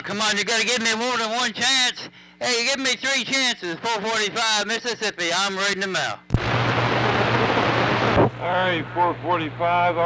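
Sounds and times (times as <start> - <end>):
loud radio static hiss: 1.2 - 10.0
low hum: 6.3 - 9.6.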